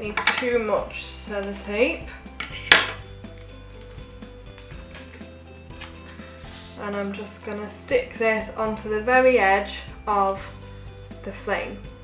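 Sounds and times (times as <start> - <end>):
soft background music: 0.0 - 12.0
sticky tape tearing: 3.2 - 6.4.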